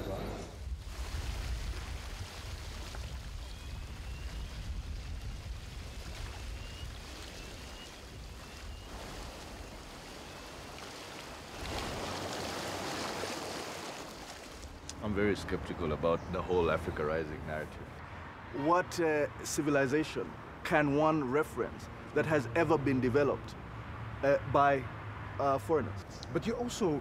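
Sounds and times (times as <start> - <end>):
wind: 0.0 - 27.0
waves rushing: 5.6 - 14.9.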